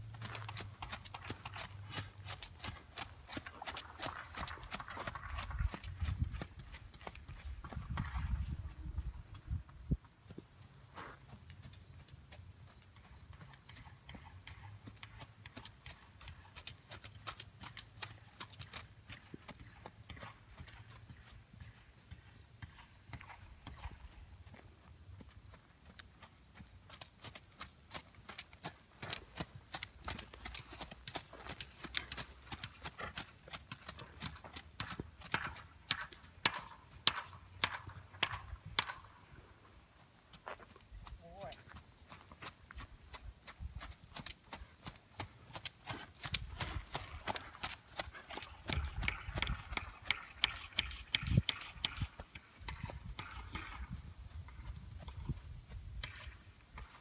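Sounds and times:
horse hoofbeats on gravel: 0:00.0 - 0:57.0.

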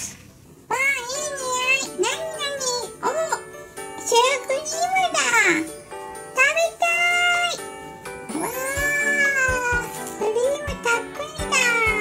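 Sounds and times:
cute background music: 0:00.0 - 0:12.0
high-pitched cry: 0:08.3 - 0:10.0.

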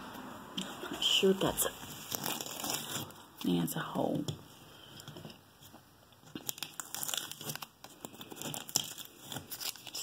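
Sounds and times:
tape peeling off a wall: 0:01.8 - 0:03.2, 0:06.3 - 0:10.0.

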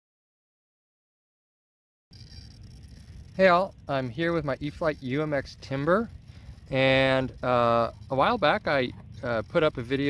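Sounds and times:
faint outdoor background noise: 0:02.1 - 0:10.0
low rumble: 0:02.1 - 0:10.0.

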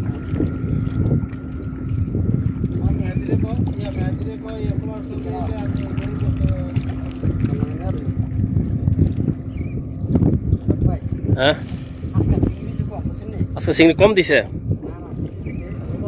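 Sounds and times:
sea water washing against rocks: 0:00.0 - 0:09.4, 0:11.3 - 0:14.4
steady low hum: 0:00.0 - 0:16.0
wind on microphone: 0:00.0 - 0:16.0.

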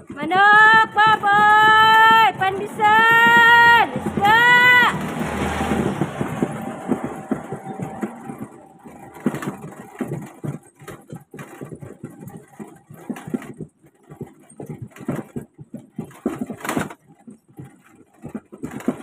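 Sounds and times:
pushcart rattling on concrete: 0:00.0 - 0:19.0
motor vehicle passing: 0:00.8 - 0:13.3.

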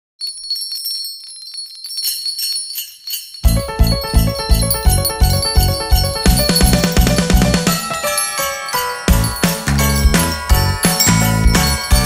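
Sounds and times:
sleigh bells jingling: 0:00.2 - 0:12.0.

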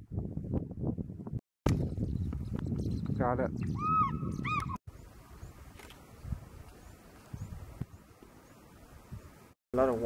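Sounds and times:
bird yelping calls: 0:03.6 - 0:04.8.

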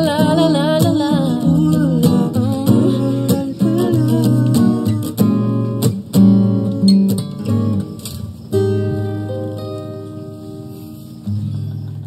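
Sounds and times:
acoustic guitars strumming: 0:00.0 - 0:12.0.

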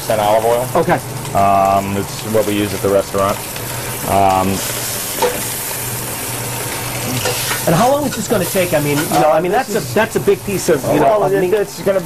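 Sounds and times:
meat sizzling in hot oil: 0:00.0 - 0:12.0.

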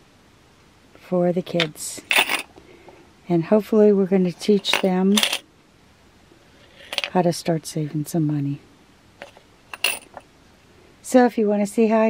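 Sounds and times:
coins jingling in wooden bank: 0:02.0 - 0:02.5, 0:04.5 - 0:05.4, 0:06.8 - 0:07.2, 0:09.2 - 0:10.2.

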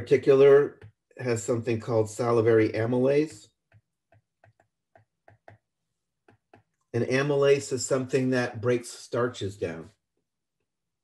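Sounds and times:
stylus tapping on tablet screen: 0:03.7 - 0:06.9.

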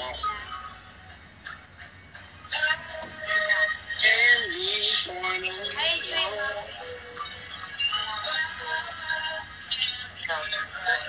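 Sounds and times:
music with singing voice: 0:00.0 - 0:11.0.

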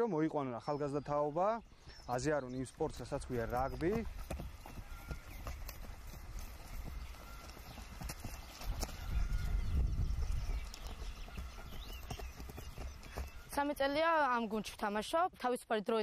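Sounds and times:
footsteps running on grass: 0:02.7 - 0:15.0.

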